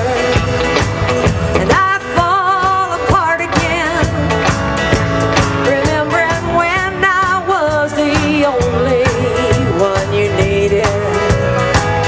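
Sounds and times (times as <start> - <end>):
woman singing with vibrato: 0.0 - 0.8, 1.4 - 4.5, 5.5 - 12.0
drum kit: 0.0 - 12.0
guitars: 0.0 - 12.0.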